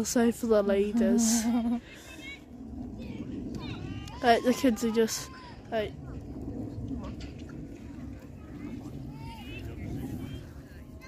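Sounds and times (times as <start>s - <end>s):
steady low rumble: 0.0s - 11.0s
distant people talking: 1.4s - 11.0s.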